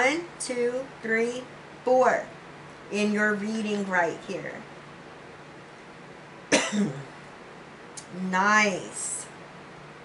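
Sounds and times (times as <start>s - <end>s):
woman clearing her throat: 6.5s - 7.2s.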